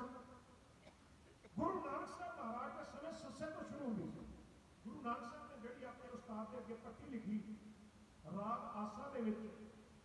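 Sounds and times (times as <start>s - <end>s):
man's voice over microphone: 0.0s - 0.4s, 1.5s - 9.8s.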